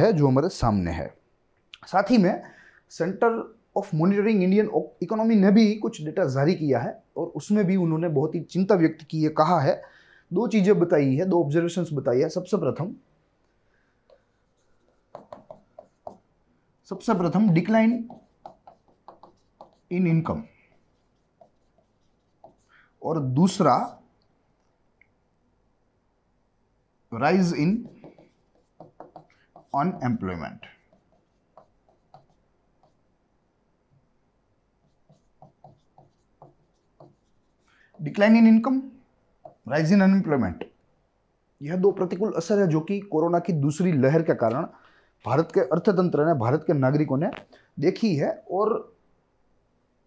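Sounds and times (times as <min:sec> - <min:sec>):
pen strokes on whiteboard: 0:13.9 - 0:16.3, 0:16.9 - 0:22.8, 0:27.2 - 0:33.1, 0:34.8 - 0:38.6, 0:39.4 - 0:39.9.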